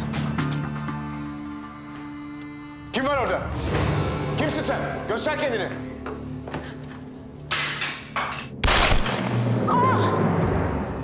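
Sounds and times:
dramatic music score: 0.0s - 11.0s.

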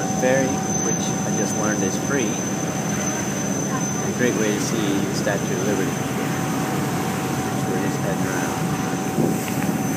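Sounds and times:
ferry engine rumble: 0.0s - 9.9s
thin steady whine: 0.0s - 9.9s.

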